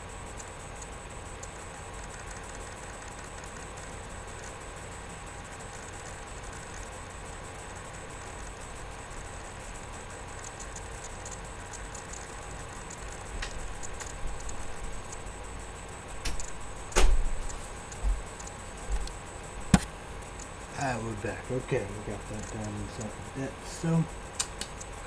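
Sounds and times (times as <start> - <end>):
room hum: 0.0 - 25.0
faint clicks: 10.4 - 15.2.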